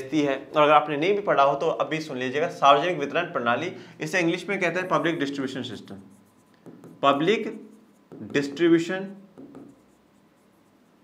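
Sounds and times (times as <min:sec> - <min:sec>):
stylus scratching and tapping screen: 0:04.4 - 0:11.0.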